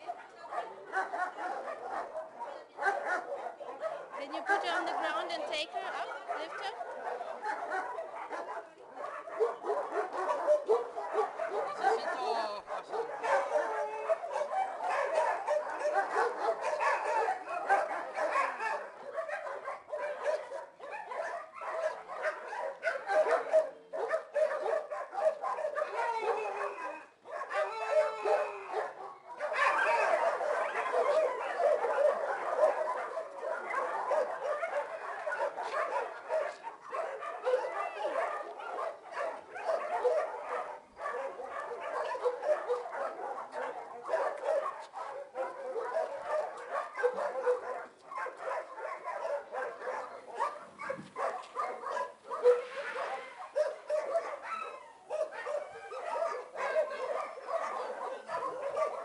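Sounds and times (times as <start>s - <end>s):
many dogs barking: 0.0s - 59.0s.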